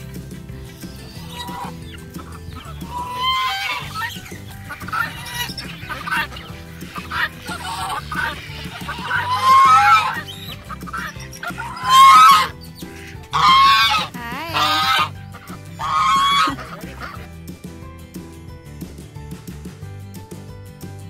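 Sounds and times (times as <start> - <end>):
background music: 0.0 - 21.0
geese honking loudly: 0.7 - 17.3.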